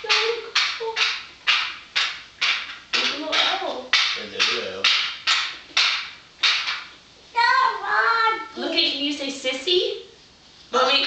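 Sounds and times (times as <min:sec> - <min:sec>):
sharp knocking: 0:00.0 - 0:06.9.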